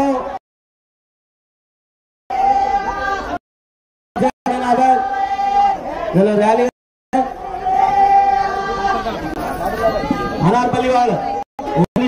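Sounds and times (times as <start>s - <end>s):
crowd chatter: 2.3s - 3.4s, 4.2s - 12.0s.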